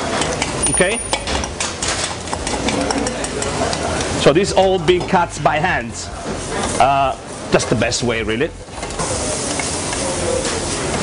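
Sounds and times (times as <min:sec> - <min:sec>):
light sizzle of vegetables: 0:03.9 - 0:11.0.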